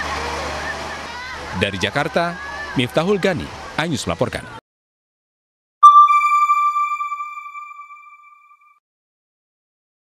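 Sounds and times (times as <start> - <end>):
bright electronic chime: 5.8 - 8.6.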